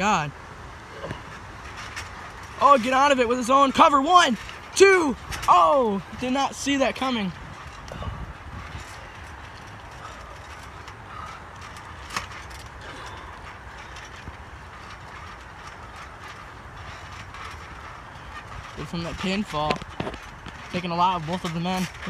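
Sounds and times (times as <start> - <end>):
low background noise: 0.0 - 22.0
trampoline springs creaking: 0.0 - 22.0.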